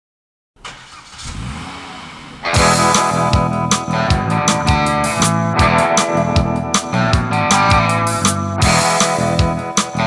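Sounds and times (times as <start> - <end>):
car engine revving: 0.6 - 5.5
guitar-led rock song: 2.4 - 10.0.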